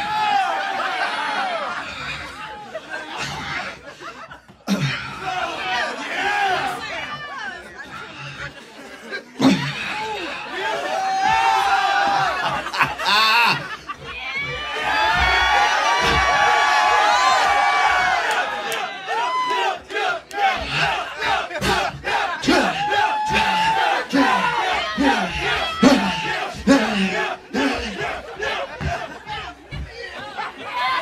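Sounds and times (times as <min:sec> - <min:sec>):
crowd shouting and yelling: 0:00.0 - 0:31.0.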